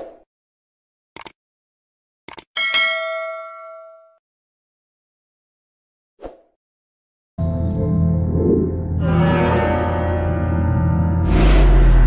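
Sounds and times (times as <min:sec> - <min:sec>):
notification bell ding: 0:02.6 - 0:04.2.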